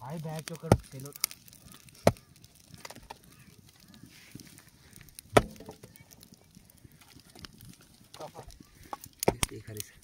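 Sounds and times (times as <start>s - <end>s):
dry wood cracking: 0.0s - 10.0s
faint fire ticks: 0.0s - 10.0s.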